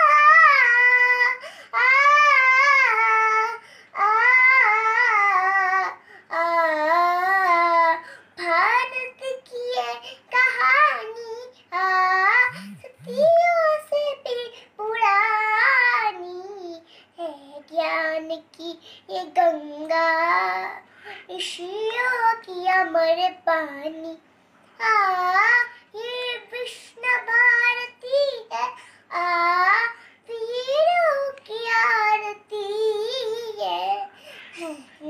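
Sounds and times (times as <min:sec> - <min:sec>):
girl singing unaccompanied: 0:00.0 - 0:35.0.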